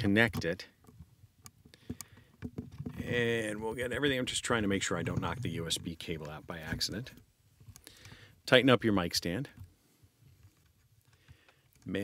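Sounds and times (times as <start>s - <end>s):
microphone handling clicks: 0.2s - 3.2s.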